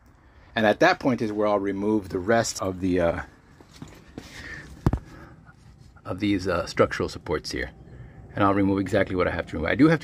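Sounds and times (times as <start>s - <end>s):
faint footsteps: 3.5s - 6.0s.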